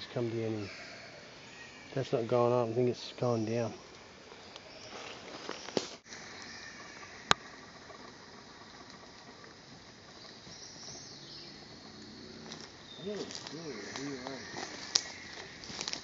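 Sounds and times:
footsteps rustling dry leaves: 4.2s - 6.9s, 12.4s - 16.0s.

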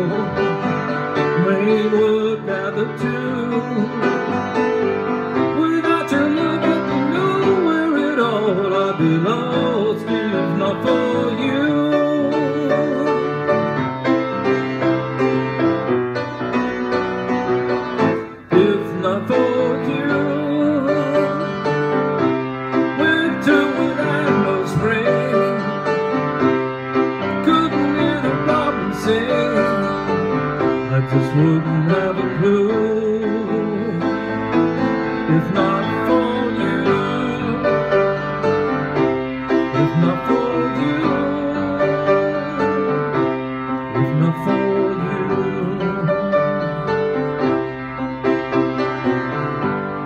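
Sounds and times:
piano accompaniment: 0.0s - 50.0s
man singing long wavering notes: 23.0s - 25.9s, 39.6s - 43.0s, 43.9s - 47.2s.

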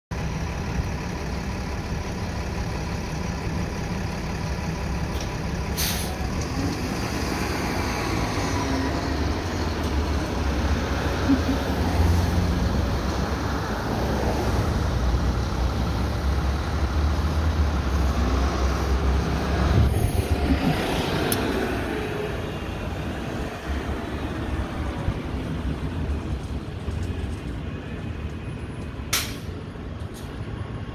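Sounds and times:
bus engine rumble: 0.1s - 30.9s
traffic noise: 0.1s - 30.9s.

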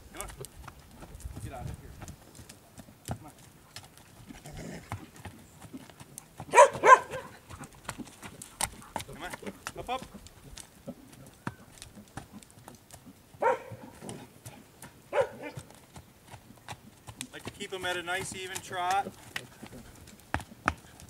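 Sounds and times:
horse hooves trotting on dirt: 0.0s - 21.0s.

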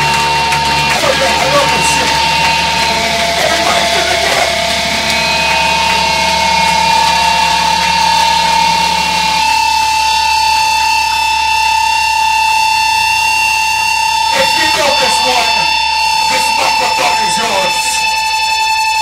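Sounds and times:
amplifier feedback tone: 0.0s - 19.0s
low hum: 0.0s - 19.0s.

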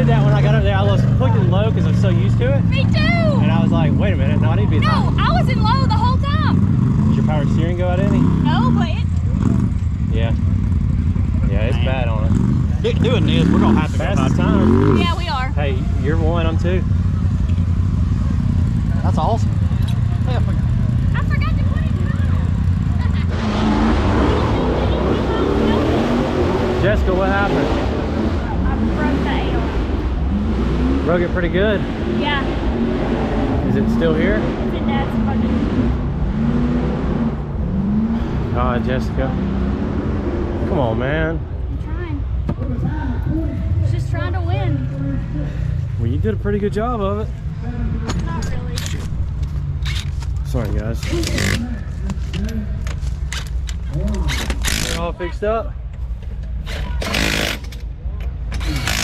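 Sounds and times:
people talking: 0.0s - 6.6s, 7.2s - 9.1s, 10.2s - 10.4s, 11.4s - 16.8s, 18.9s - 23.6s, 24.2s - 27.8s, 28.4s - 29.8s, 31.1s - 32.5s, 33.6s - 35.6s, 38.6s - 39.4s, 40.7s - 45.1s, 46.0s - 49.1s, 50.5s - 51.8s, 53.9s - 55.6s.

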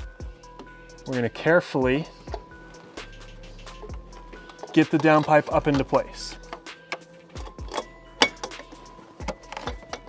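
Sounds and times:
metal knocks and clanks: 3.7s - 10.0s.

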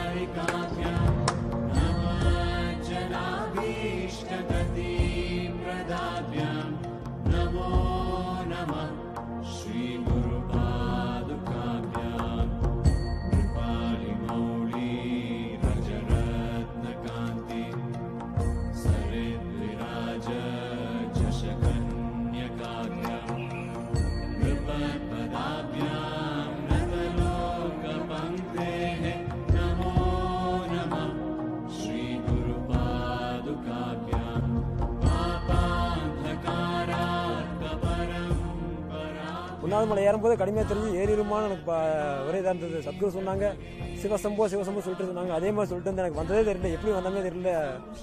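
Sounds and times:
mantra chanted over music: 0.0s - 48.0s.

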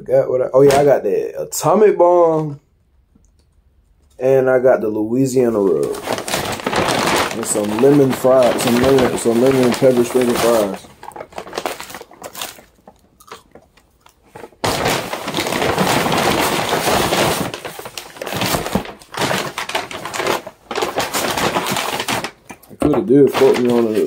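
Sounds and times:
paper bag rustling: 5.3s - 24.0s.

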